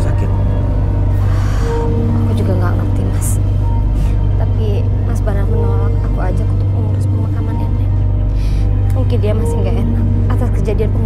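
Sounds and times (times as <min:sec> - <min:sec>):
drama music with low drone: 0:00.0 - 0:11.0.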